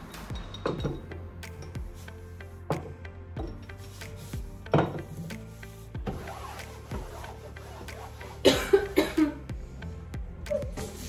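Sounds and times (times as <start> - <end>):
person coughing: 8.4 - 9.5.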